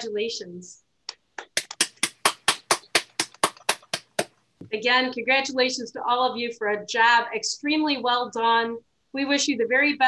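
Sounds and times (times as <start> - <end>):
hands clapping: 1.1 - 4.3.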